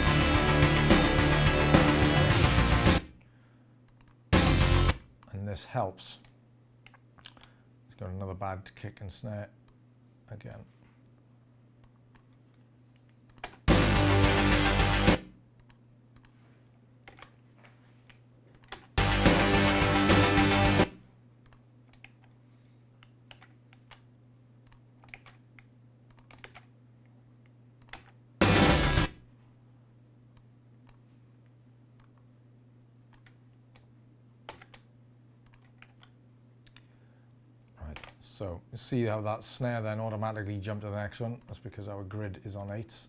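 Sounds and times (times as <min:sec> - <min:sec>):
drum recording playback: 0:00.0 - 0:03.1, 0:04.3 - 0:05.0, 0:13.7 - 0:15.3, 0:19.0 - 0:21.0, 0:28.4 - 0:29.2
low steady hum: 0:03.0 - 0:43.0.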